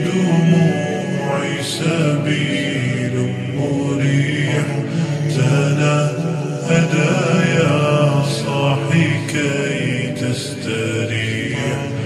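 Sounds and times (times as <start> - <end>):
chant-like vocal music: 0.0 - 12.0
low vocal drone: 0.0 - 12.0.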